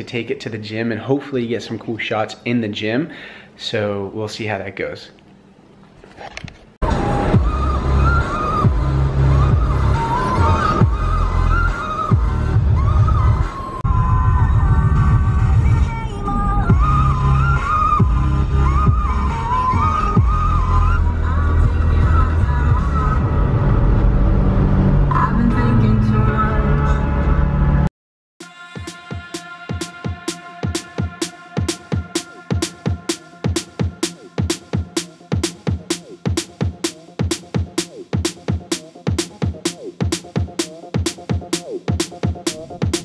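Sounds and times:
background music with pulsing bass: 0:06.8 - 0:43.0.

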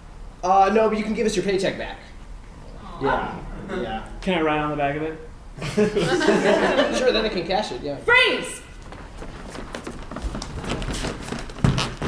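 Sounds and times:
footsteps on stage floor: 0:08.7 - 0:12.0
chair being moved: 0:08.8 - 0:12.0.

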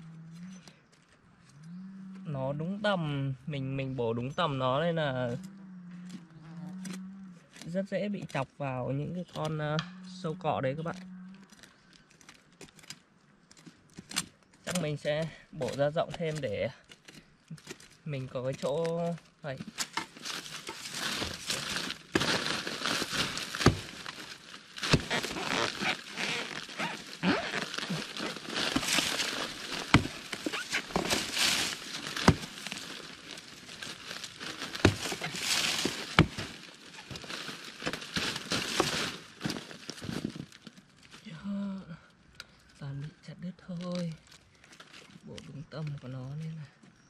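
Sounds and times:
dry fronds crackling and rustling: 0:04.3 - 0:47.0
axe chopping palm trunk: 0:23.0 - 0:24.2, 0:24.8 - 0:32.8, 0:34.6 - 0:37.2.

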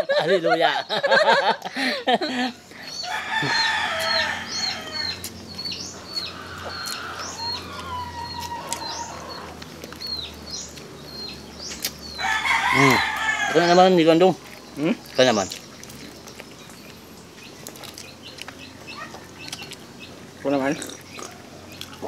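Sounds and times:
chickens calling: 0:00.0 - 0:22.0.

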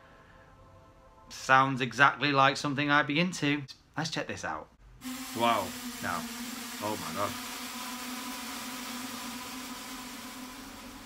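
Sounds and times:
hiss: 0:05.0 - 0:11.0.

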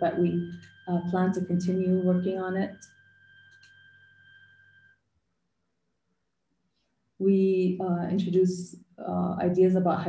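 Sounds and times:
low hum: 0:00.0 - 0:04.9
faint high-pitched tone: 0:00.0 - 0:05.0.

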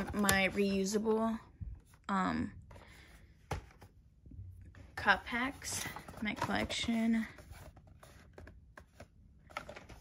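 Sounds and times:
cardboard boxes being handled: 0:05.3 - 0:10.0.

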